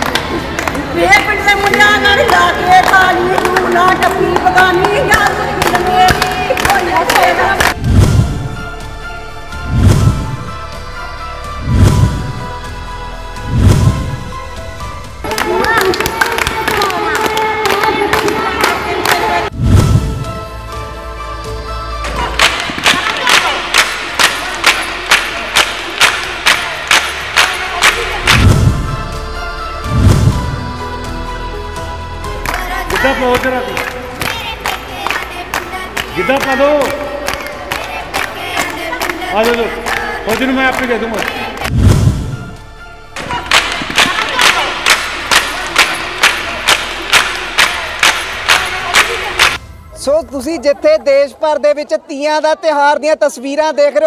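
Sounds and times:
women clapping in time: 0.0s - 0.9s, 1.6s - 7.8s, 15.2s - 19.5s, 22.2s - 28.4s, 43.2s - 49.6s
women calling and singing: 0.0s - 7.8s, 15.2s - 19.5s, 21.3s - 28.4s, 30.6s - 41.7s, 43.2s - 49.6s.

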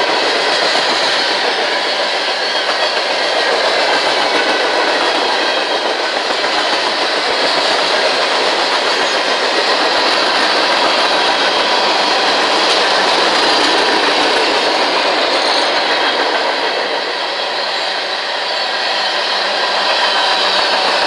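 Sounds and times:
wheel-on-rail noise and car rattle: 0.0s - 18.0s
freight train cars rolling past: 0.0s - 21.0s.

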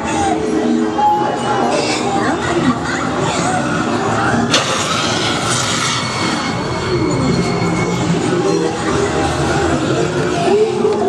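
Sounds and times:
dense rumbling din with voices: 0.0s - 11.0s
sudden crash: 4.5s - 8.3s.

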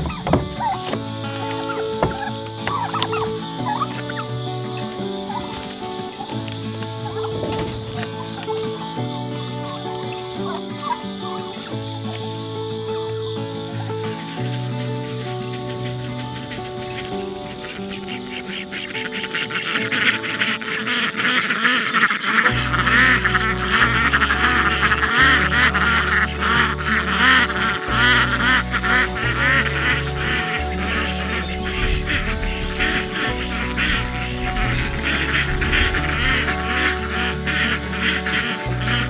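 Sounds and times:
background music: 0.0s - 39.0s
ducks quacking: 0.0s - 39.0s.

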